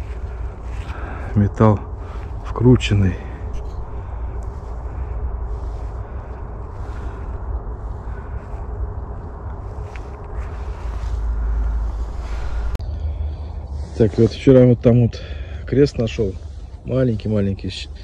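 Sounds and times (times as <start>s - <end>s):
wind rumble: 0.0s - 18.0s.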